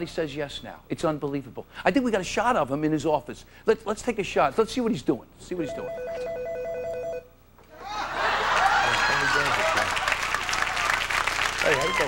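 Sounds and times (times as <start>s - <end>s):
telephone ringing with electronic trill: 5.7s - 7.3s.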